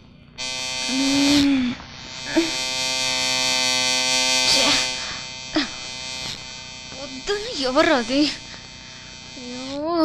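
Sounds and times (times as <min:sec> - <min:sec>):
electric shaver buzzing: 0:00.4 - 0:10.0
short vocal sounds: 0:00.9 - 0:02.6.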